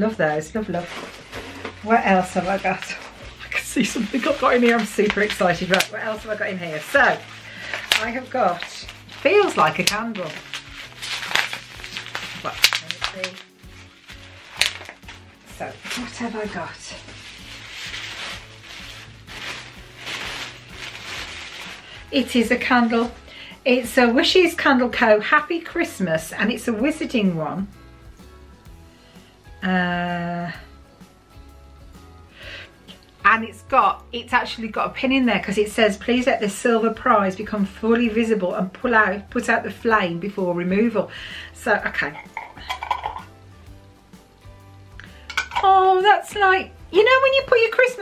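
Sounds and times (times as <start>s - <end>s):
tissue paper crinkling: 0.5s - 24.3s
glass jar clinks and scrapes: 42.2s - 43.3s, 45.2s - 45.7s.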